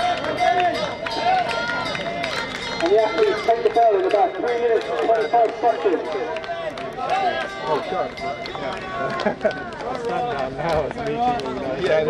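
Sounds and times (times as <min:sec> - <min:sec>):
runners' footsteps on track: 0:00.0 - 0:12.0
spectators talking: 0:00.0 - 0:12.0.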